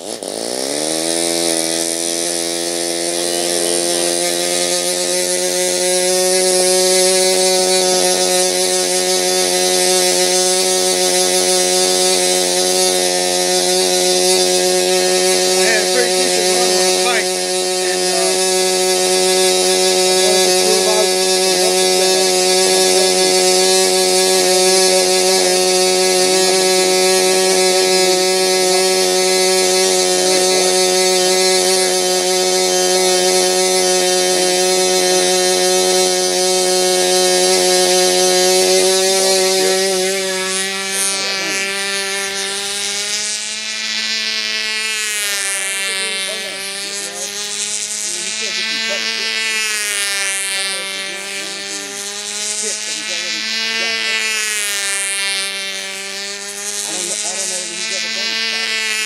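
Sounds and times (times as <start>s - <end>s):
model airplane engine droning: 0.0s - 59.0s.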